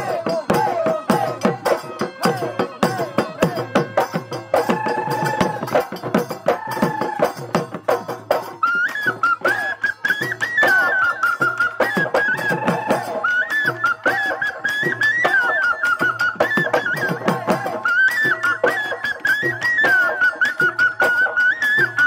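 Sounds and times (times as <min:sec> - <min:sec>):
fast dhol drumming: 0:00.0 - 0:22.0
ornamented wind instrument melody: 0:00.0 - 0:22.0.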